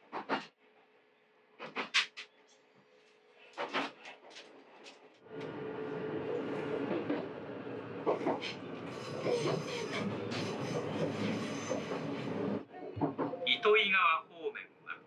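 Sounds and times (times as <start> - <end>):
train wheels rumbling on rail: 3.6 - 13.4.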